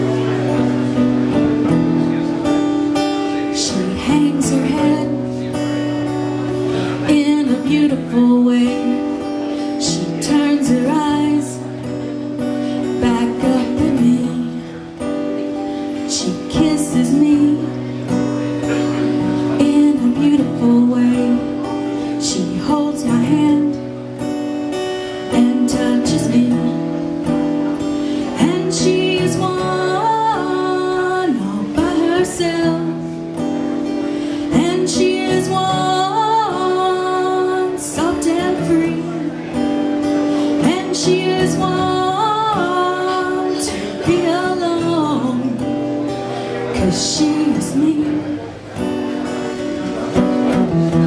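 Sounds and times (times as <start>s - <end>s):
acoustic guitar strumming: 0.0s - 51.0s
woman singing: 2.8s - 27.4s, 28.2s - 48.5s.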